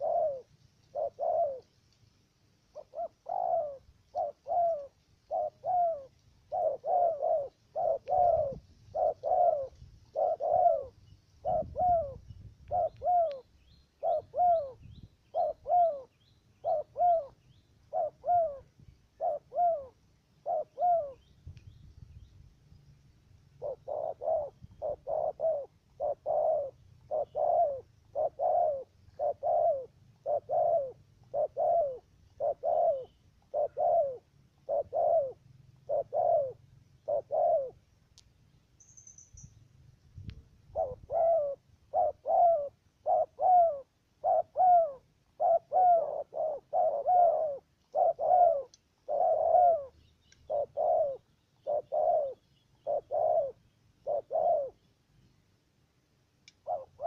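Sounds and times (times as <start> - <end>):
dove cooing: 0.0 - 1.8, 2.7 - 21.3, 23.5 - 38.0, 40.6 - 54.9, 56.6 - 57.0.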